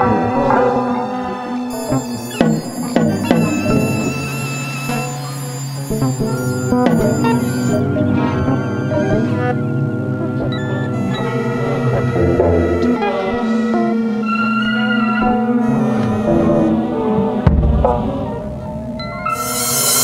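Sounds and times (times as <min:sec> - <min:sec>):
atonal sustained synth tones: 0:00.0 - 0:20.0.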